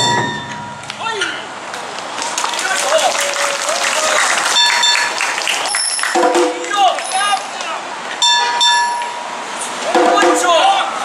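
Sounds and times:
bright metallic ring: 0.0 - 0.9, 8.2 - 9.4.

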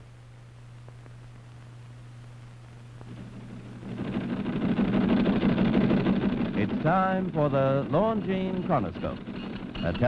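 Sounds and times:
teletype machine clattering: 3.2 - 10.0.

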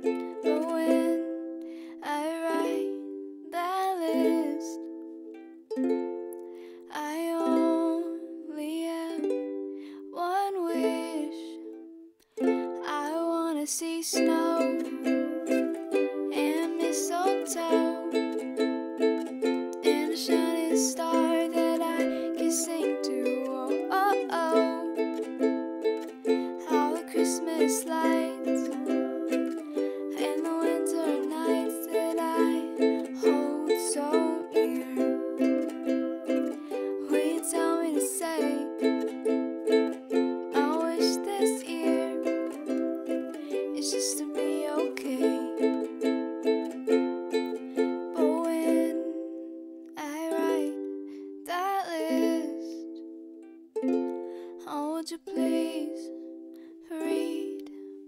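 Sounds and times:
ukulele strumming: 0.0 - 58.0.

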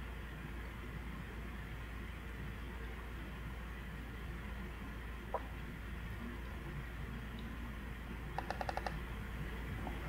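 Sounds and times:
steady low hum: 0.0 - 10.0
computer keyboard clicks: 8.4 - 9.0.

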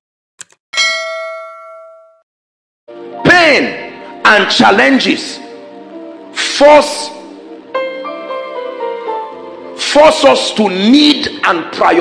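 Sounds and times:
bright bell ding: 0.8 - 2.3.

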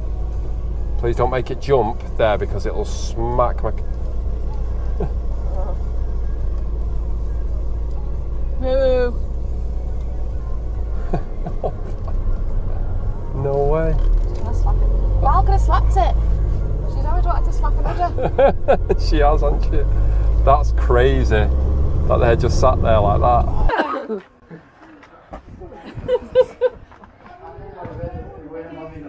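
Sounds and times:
engine and road rumble in cabin: 0.0 - 23.8
voices: 0.0 - 29.0.

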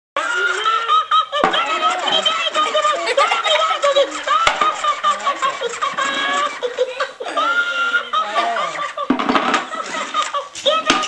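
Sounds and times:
toy laughing in squeaky voice: 0.2 - 11.0.

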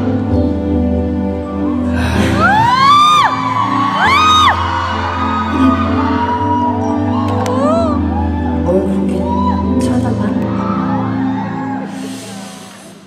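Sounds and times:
live concert music: 0.0 - 13.0
audience shrieking: 2.2 - 8.6.

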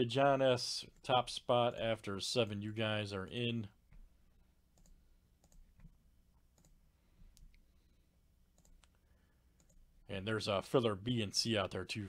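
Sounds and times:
computer mouse clicks: 4.8 - 7.6, 8.5 - 9.0, 9.6 - 9.8.

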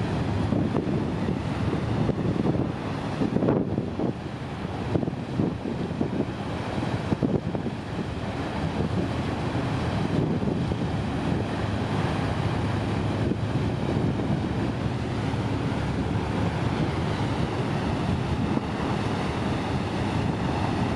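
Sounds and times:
boat engine rumble: 0.0 - 20.9
churning wake rushing: 0.0 - 20.9
wind buffeting microphone: 0.0 - 20.9.

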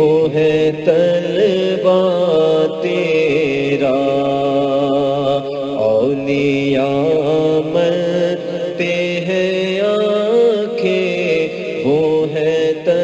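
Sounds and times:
devotional vocal chanting: 0.0 - 13.0.

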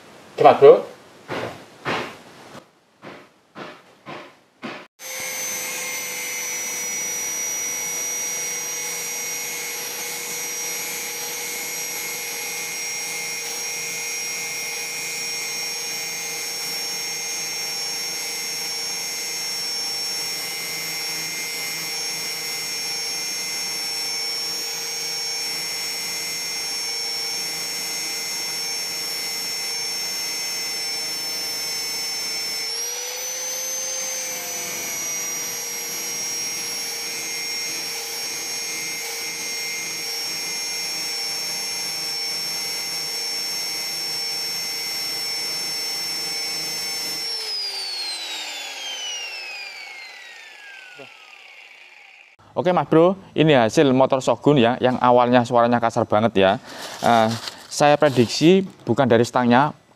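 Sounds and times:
angle grinder whining on metal: 4.9 - 52.4, 56.6 - 59.0
grinder disc spinning down: 5.0 - 52.4.

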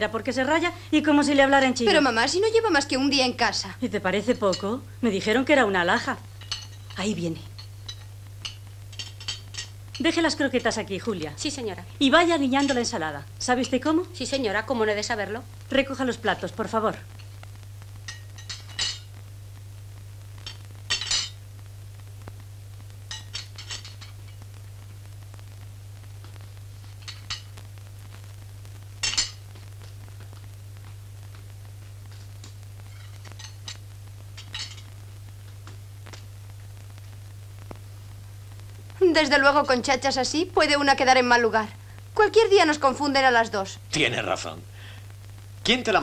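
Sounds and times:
steady low hum: 0.0 - 46.0
plates and cutlery clinking: 6.4 - 7.0, 7.6 - 9.7, 18.1 - 19.1, 20.4 - 21.4, 23.1 - 24.2, 27.0 - 27.5, 29.0 - 29.4, 34.4 - 34.9.

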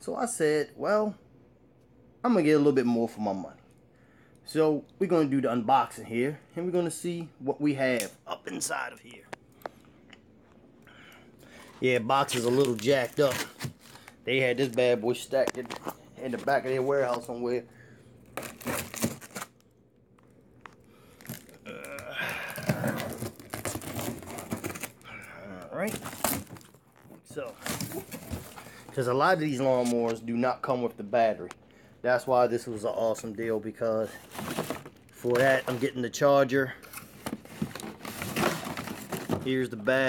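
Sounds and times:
plastic bag crinkling: 11.9 - 17.4, 18.2 - 25.1, 25.7 - 29.1, 34.0 - 36.0, 37.0 - 39.8
cardboard box tearing and rustling: 18.4 - 19.5, 22.5 - 25.0, 25.9 - 26.8, 37.0 - 39.5.

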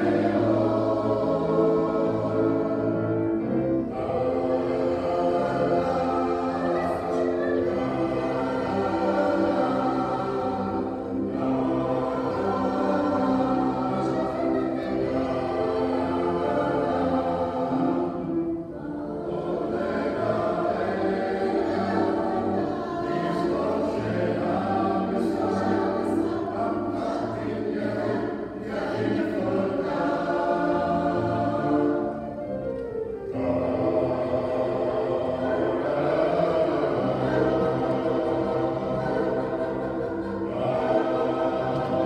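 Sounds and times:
mixed choir singing chords: 0.0 - 42.0.

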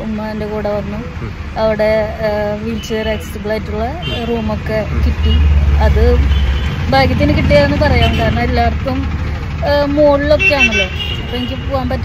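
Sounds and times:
woman talking: 0.0 - 6.3, 6.9 - 12.0
car engine and road rumble: 0.0 - 12.0.

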